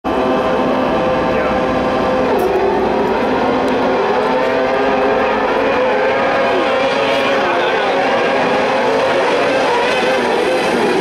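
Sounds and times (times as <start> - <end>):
high-revving engines racing: 0.1 - 11.0.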